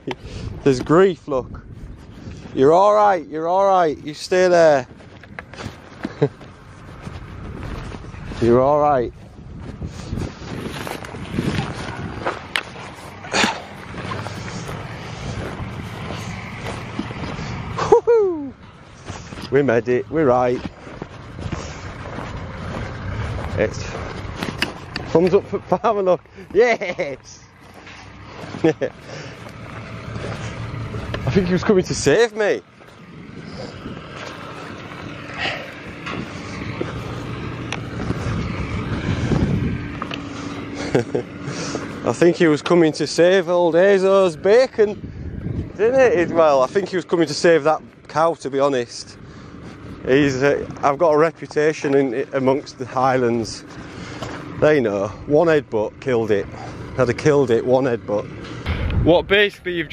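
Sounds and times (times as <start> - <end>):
tractor engine running: 0.0 - 59.9
wind buffeting microphone: 0.0 - 59.9
footsteps through grass: 1.6 - 42.6.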